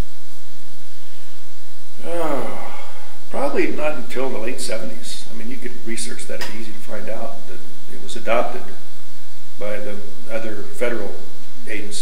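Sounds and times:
electrical hum with hiss: 0:00.0 - 0:12.0.

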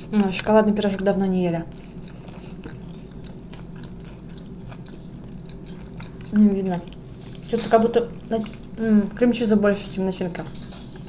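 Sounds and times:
steady low hum: 0:00.0 - 0:11.0
chewing mouth clicks: 0:01.7 - 0:07.4.

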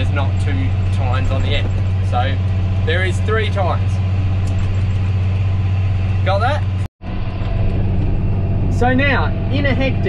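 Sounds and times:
tractor engine drone: 0:00.0 - 0:10.0.

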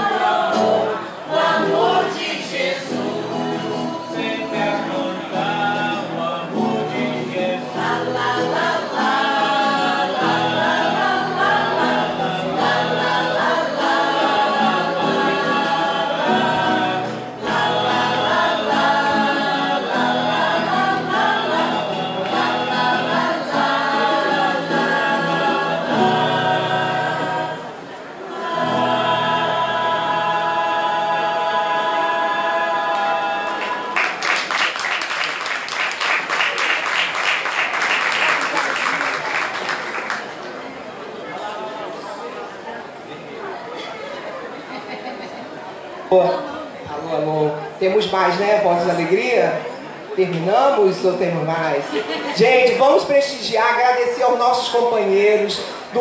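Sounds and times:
choir singing: 0:00.0 - 0:34.5
people clapping: 0:32.9 - 0:40.8.

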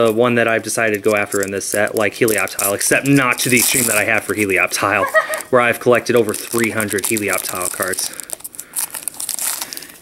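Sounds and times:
foil wrapper tearing and crinkling: 0:00.0 - 0:10.0.

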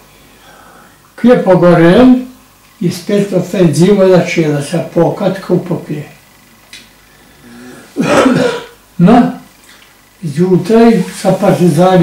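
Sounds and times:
man clearing his throat: 0:07.6 - 0:08.8.

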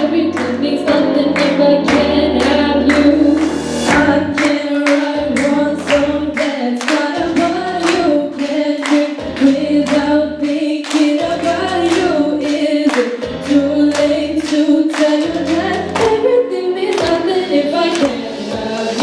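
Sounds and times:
children clapping: 0:00.0 - 0:16.2, 0:16.9 - 0:17.3, 0:17.9 - 0:18.2
backing track with beat: 0:00.0 - 0:19.0
girls singing pop song: 0:00.0 - 0:19.0.

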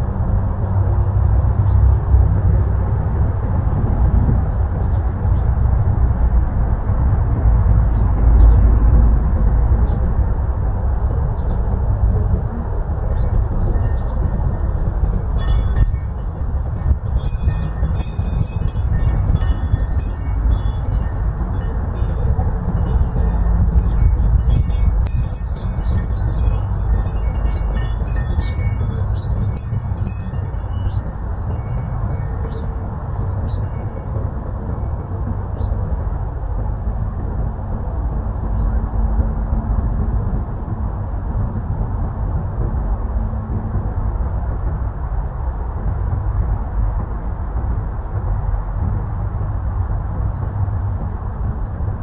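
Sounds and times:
wind buffeting microphone: 0:00.0 - 0:52.0
wind chimes tinkling: 0:12.8 - 0:34.6.

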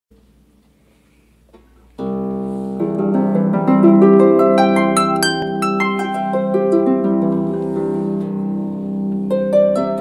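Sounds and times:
harp chord ringing: 0:02.0 - 0:10.0.

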